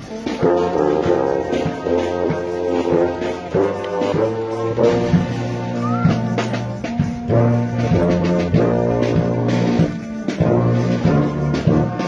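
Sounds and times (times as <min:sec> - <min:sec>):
brass band playing: 0:00.0 - 0:12.0.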